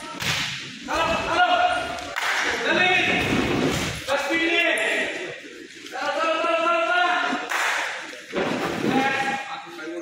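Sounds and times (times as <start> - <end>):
boys calling and shouting: 0.0 - 3.3, 4.0 - 7.5.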